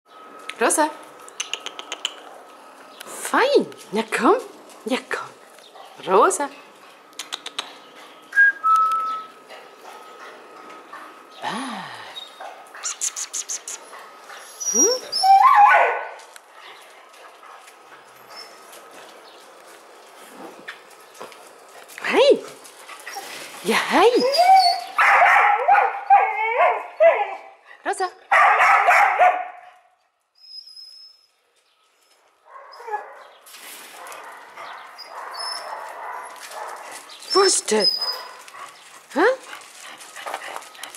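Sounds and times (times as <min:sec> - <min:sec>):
dog whining: 0:14.4 - 0:16.0, 0:24.0 - 0:25.0, 0:30.4 - 0:31.3
dog barking: 0:15.5 - 0:16.2, 0:25.0 - 0:27.2, 0:28.3 - 0:29.8, 0:32.5 - 0:33.3, 0:34.0 - 0:36.9, 0:38.0 - 0:38.5
feet crunching on gravel: 0:35.7 - 0:37.3.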